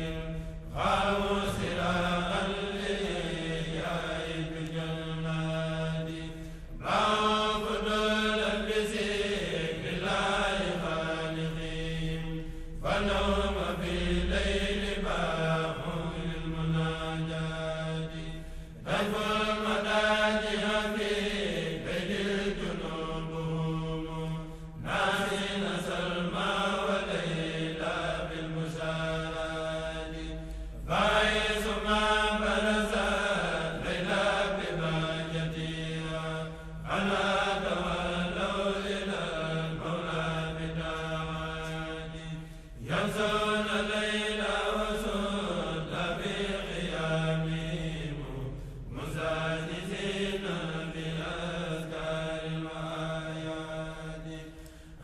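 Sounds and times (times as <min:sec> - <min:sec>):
melodic chanting: 0:00.0 - 0:55.0.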